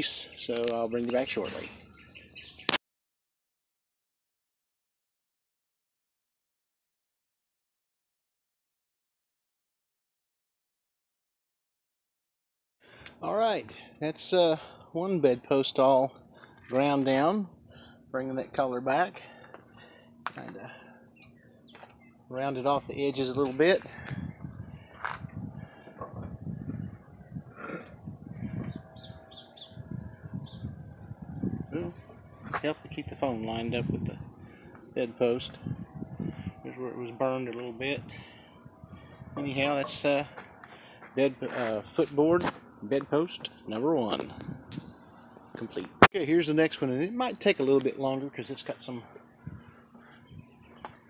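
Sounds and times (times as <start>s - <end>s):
birds calling: 0.0s - 2.8s, 18.9s - 42.4s, 43.4s - 51.0s
high bird chirps: 1.1s - 2.8s, 28.4s - 32.5s.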